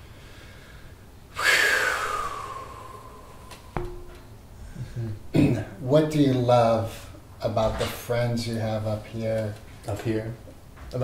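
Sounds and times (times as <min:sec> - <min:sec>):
sharp tap: 0:03.5 - 0:04.3.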